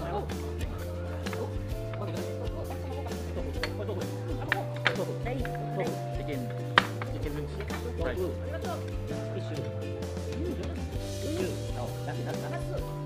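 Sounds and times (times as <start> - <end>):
background music: 0.0 - 13.0
tableware clicks: 3.5 - 8.0.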